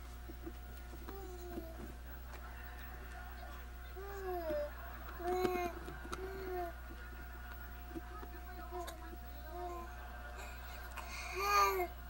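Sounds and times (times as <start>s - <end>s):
baby cooing: 1.1s - 1.9s, 4.0s - 6.8s, 11.0s - 12.0s.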